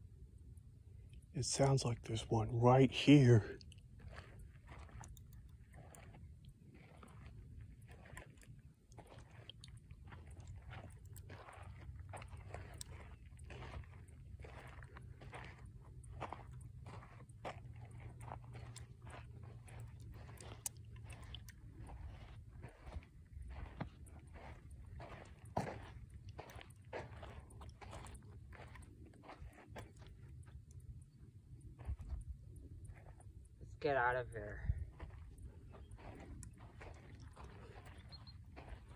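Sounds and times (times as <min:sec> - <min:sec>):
crunching footsteps on sandy trail: 0:01.4 - 0:38.9
wind rumble on microphone: 0:31.0 - 0:33.6, 0:34.6 - 0:38.2.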